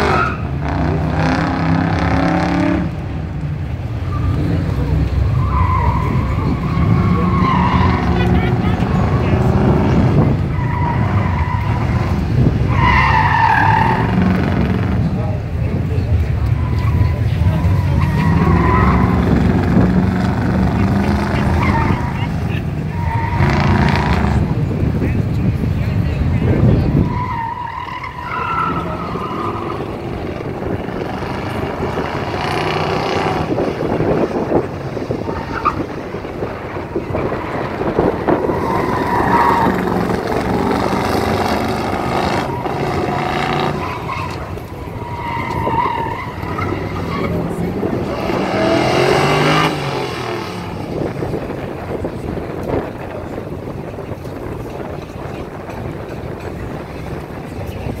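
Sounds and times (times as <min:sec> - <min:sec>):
truck engine revving: 0:00.0 - 0:52.9
tires squealing: 0:00.0 - 0:58.0.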